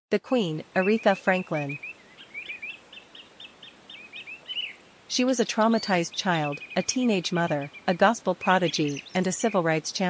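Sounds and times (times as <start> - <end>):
bird chirping faintly: 0.4 - 10.0.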